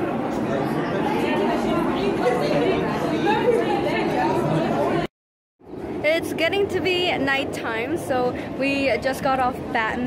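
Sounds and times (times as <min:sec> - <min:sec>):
babble of people talking: 0:00.0 - 0:05.1.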